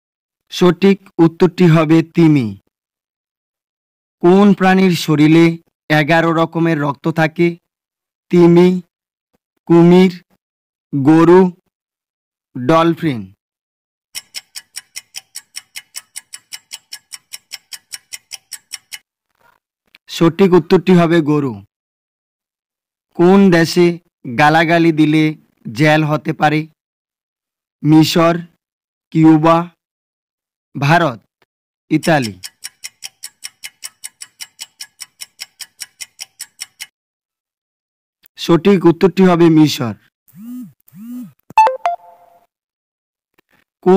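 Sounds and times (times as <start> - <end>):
rapid clock ticking: 14.2 - 19.0, 31.9 - 36.9.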